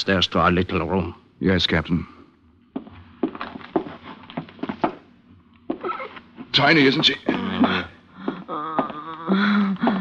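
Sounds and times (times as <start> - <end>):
footsteps in a small room: 2.5 - 10.0.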